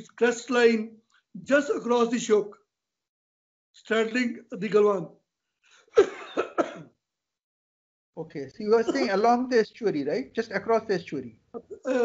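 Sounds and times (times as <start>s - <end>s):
person coughing: 6.0s - 6.9s.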